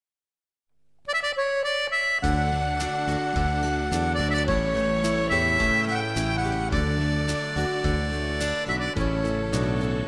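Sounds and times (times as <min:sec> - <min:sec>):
folk band with reedy melody: 0:01.1 - 0:10.0
plucked notes: 0:01.1 - 0:10.0.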